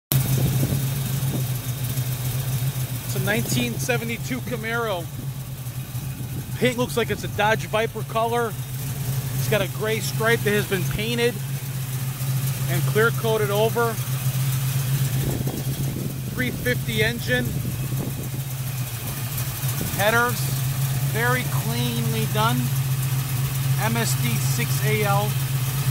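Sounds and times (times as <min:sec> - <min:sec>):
car engine idling: 0:00.1 - 0:25.9.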